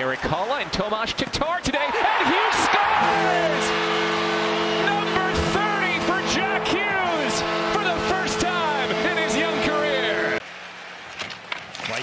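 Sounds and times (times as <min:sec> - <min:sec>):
arena crowd noise: 0:00.2 - 0:10.4
crowd cheering and whistling: 0:01.9 - 0:07.6
goal horn multi-tone chord: 0:02.2 - 0:10.4.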